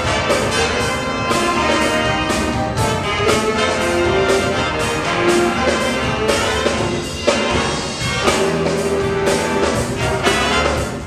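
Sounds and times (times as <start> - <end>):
jazz band playing live: 0.0 - 11.0.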